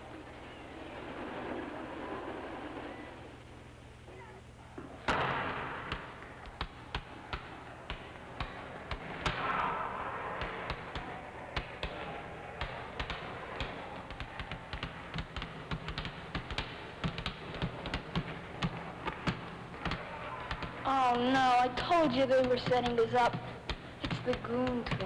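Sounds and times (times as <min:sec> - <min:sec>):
basketballs bouncing on wooden floor: 0:05.0 - 0:25.0.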